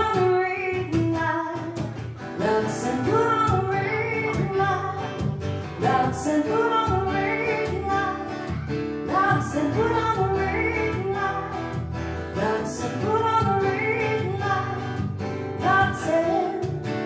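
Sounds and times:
strummed acoustic guitar: 0.0s - 17.0s
woman singing: 0.0s - 17.0s.

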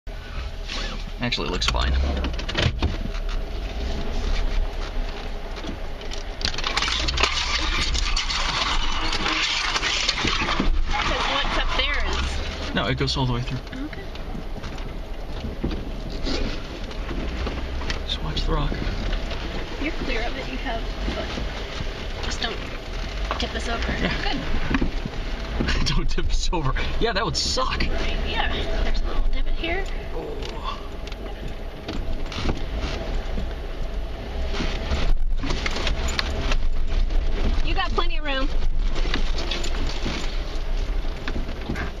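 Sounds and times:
low engine rumble: 0.0s - 42.0s
tyres crunching on rock and gravel: 2.9s - 42.0s.

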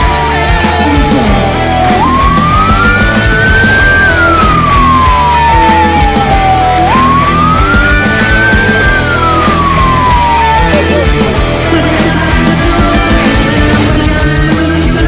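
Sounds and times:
siren wailing: 0.0s - 14.0s
rock music: 0.0s - 15.0s.

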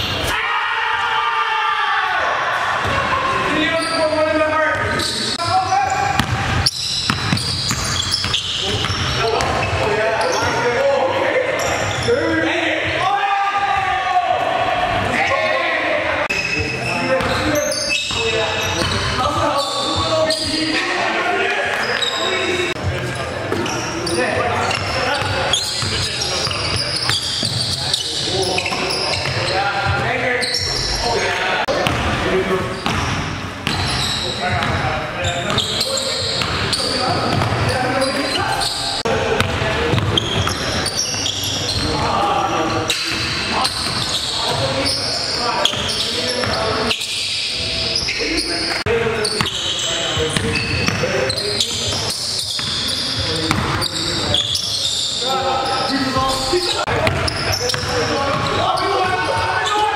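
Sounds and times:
players' voices and calls: 0.0s - 59.9s.

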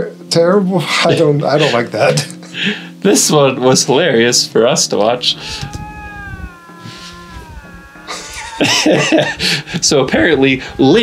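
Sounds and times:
lynx yowling: 5.3s - 9.7s.

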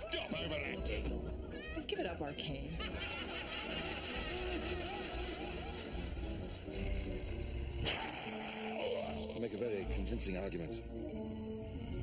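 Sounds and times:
low creature growl: 6.7s - 10.1s, 10.8s - 12.0s.

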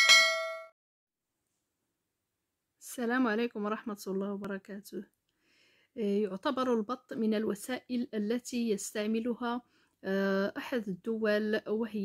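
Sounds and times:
bright bell chime: 0.0s - 0.7s.

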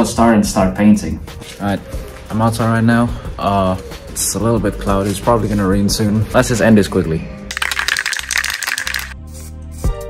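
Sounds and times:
spray can rattling: 7.5s - 9.5s.

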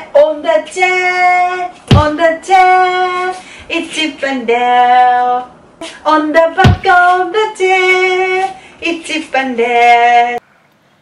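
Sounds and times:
woman and boy singing: 0.0s - 10.4s
sharp thump: 1.9s - 2.2s, 6.6s - 7.0s.

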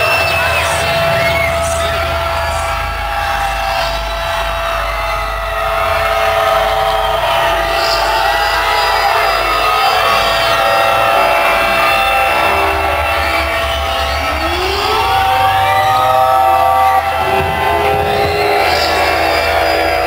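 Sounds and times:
deep rumble: 0.0s - 20.0s
layered electronic drone: 0.0s - 20.0s.

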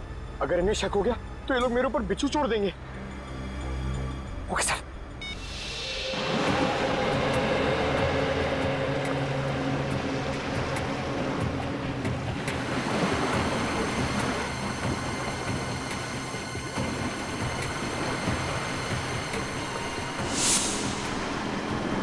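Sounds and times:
dense rushing and rumbling noise: 5.4s - 22.0s
whoosh: 20.0s - 22.0s.

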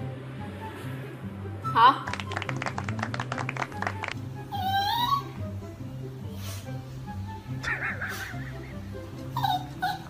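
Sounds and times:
background music with bass line: 0.0s - 10.0s
puppy whimpering: 4.5s - 5.4s, 9.2s - 10.0s.

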